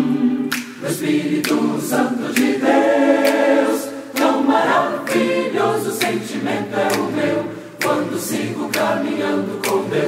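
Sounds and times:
mixed choir singing a cappella: 0:00.0 - 0:10.0.

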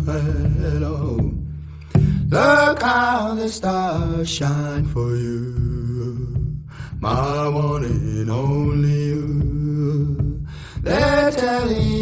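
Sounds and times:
steady bass: 0:00.0 - 0:12.0.

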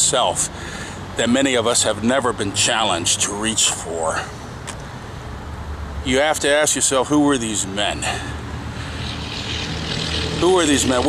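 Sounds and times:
low engine drone: 0:07.8 - 0:11.0.

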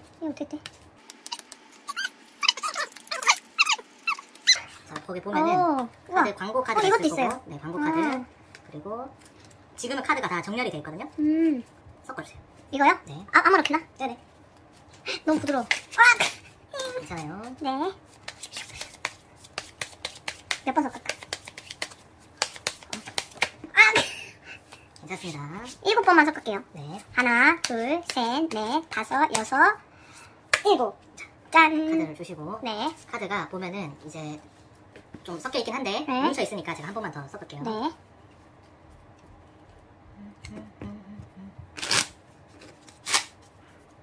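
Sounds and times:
high-pitched gliding squeaks: 0:01.3 - 0:04.7
person's voice: 0:04.9 - 0:09.1
playing cards being shuffled: 0:15.3 - 0:23.6, 0:41.7 - 0:43.5.

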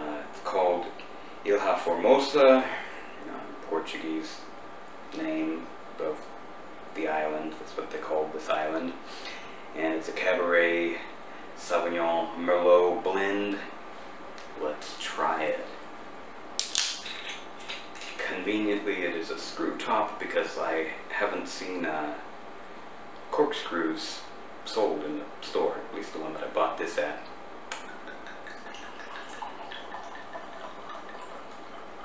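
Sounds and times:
bottle seal cracking: 0:16.6 - 0:18.2
wine trickling into glass: 0:27.8 - 0:32.0.

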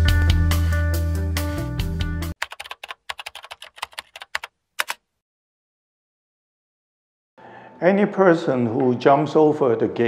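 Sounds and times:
music: 0:00.0 - 0:02.4
keyboard typing clicks: 0:02.4 - 0:05.0.

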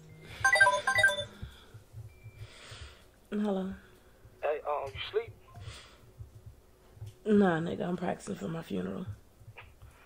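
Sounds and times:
smartphone ringtone melody: 0:00.4 - 0:01.4.

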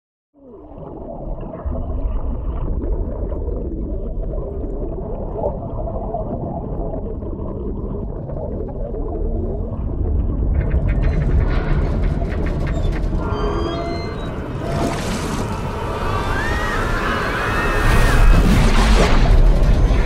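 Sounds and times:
underwater rumble of water: 0:00.4 - 0:20.0
crackling clicks and churning: 0:07.0 - 0:16.1, 0:18.3 - 0:20.0.

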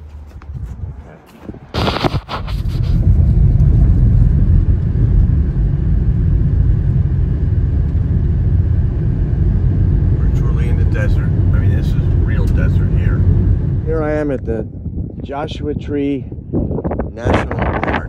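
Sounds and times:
car road rumble: 0:00.0 - 0:15.2
brief loud burst of noise: 0:01.7 - 0:03.1.

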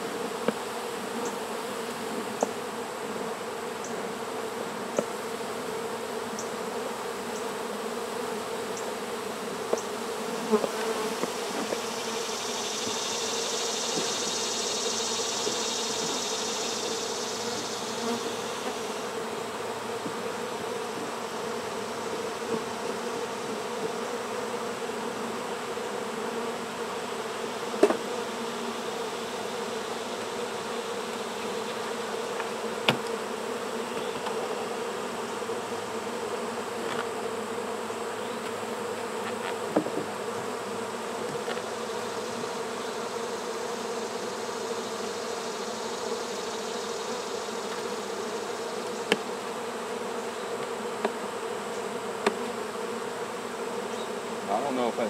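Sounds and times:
bees buzzing: 0:00.0 - 0:55.0.

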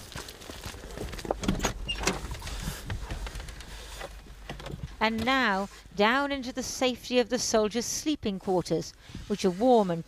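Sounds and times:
dry grass rustling: 0:00.0 - 0:06.3.

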